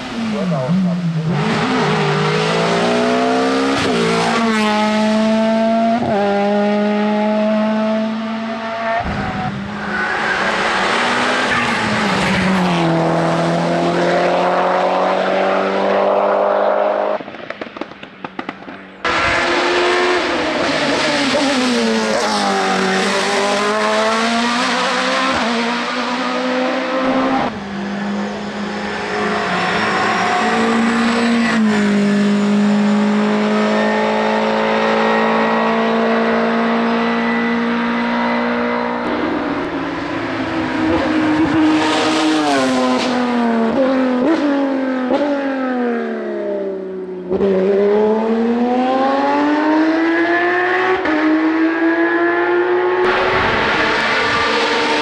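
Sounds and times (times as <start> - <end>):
race car engines at full throttle: 0.0 - 55.0.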